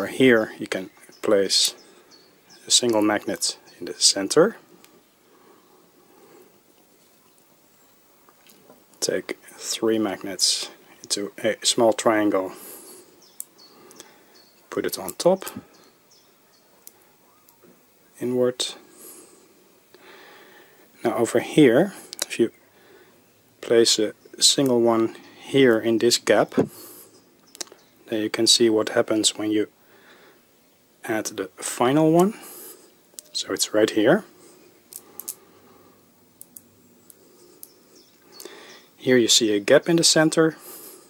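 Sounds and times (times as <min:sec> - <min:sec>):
magnet balls clicking: 0:34.9 - 0:35.5.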